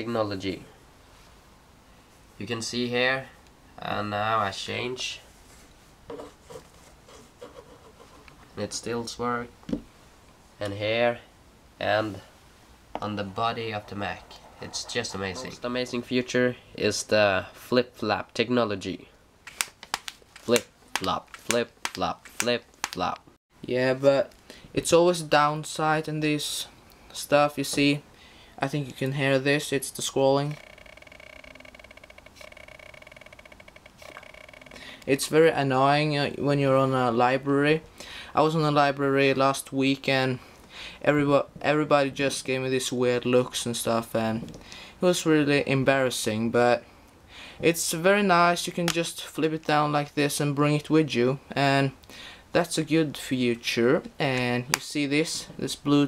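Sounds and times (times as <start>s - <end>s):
mouse rubbing on surface: 5.5s - 8.4s, 13.7s - 15.4s.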